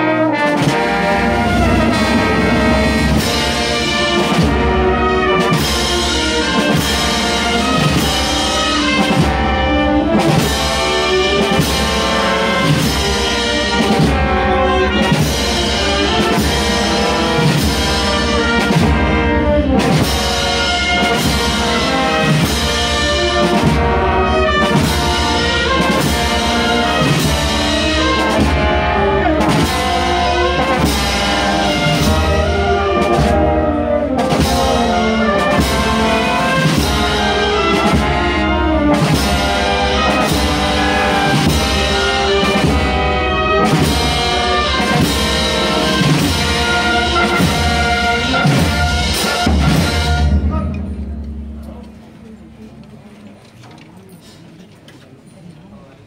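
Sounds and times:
steady drum beat: 0:00.0 - 0:50.5
wind band playing a march: 0:00.0 - 0:51.7.

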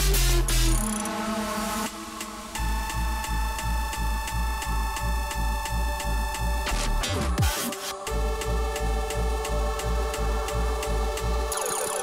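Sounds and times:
buzzing synth bass: 0:00.0 - 0:12.0
electronic dance music: 0:00.0 - 0:12.0.

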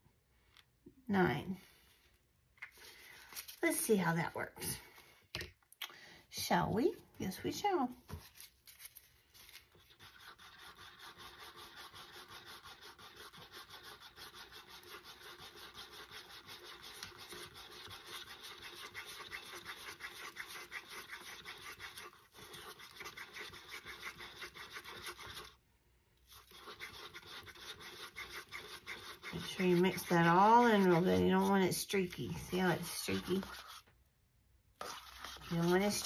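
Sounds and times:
stick scraping paper cup: 0:09.7 - 0:25.6, 0:26.2 - 0:33.9, 0:34.8 - 0:36.0.

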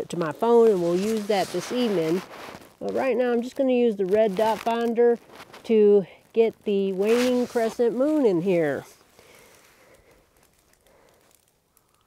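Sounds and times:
tiny ticks: 0:09.3 - 0:12.0.

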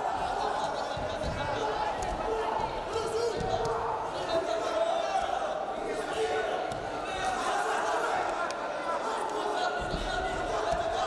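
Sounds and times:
voices calling out in hall: 0:00.0 - 0:11.0.

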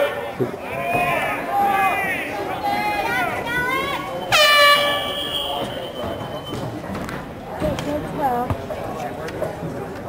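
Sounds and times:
voices: 0:00.0 - 0:10.0
air horn blast: 0:04.3 - 0:06.0.

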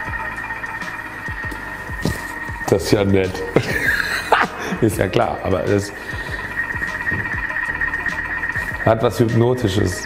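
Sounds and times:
kitchen machine whine: 0:00.0 - 0:10.0.

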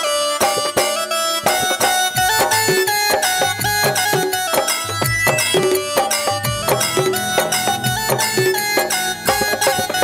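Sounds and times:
hand-drum beats: 0:00.0 - 0:10.0
keyboard melody: 0:00.0 - 0:10.0.

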